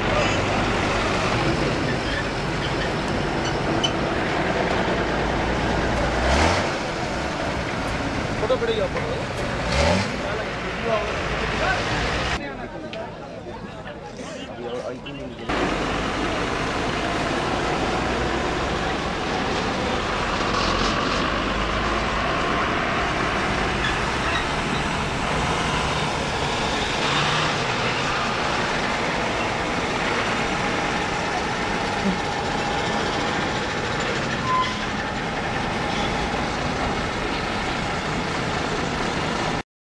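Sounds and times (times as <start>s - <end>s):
heavy trucks driving past: 0.0s - 12.6s, 15.4s - 39.6s.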